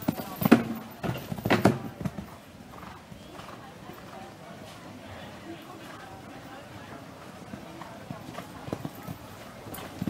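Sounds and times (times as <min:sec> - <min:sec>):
horse hoofbeats on sand: 0:00.0 - 0:04.9, 0:05.8 - 0:10.0.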